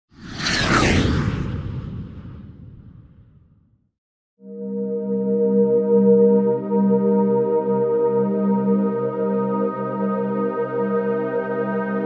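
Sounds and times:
cinematic whoosh: 0.1s - 3.8s
low rumble: 0.2s - 3.9s.

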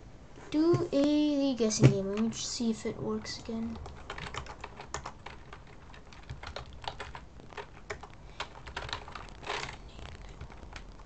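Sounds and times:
computer keyboard typing: 1.8s - 11.0s.

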